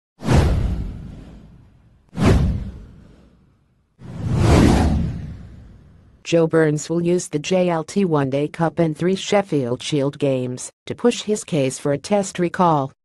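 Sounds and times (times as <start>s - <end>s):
whoosh sound effects: 2.2s - 3.4s, 4.0s - 6.1s.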